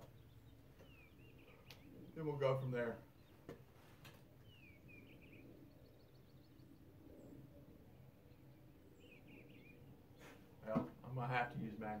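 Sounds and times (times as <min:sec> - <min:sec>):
soft bird chirps: 0:00.0 - 0:10.6.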